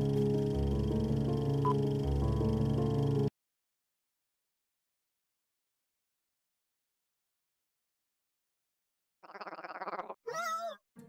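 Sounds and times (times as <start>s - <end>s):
rapid buzzing vocal rattle: 9.2s - 10.2s.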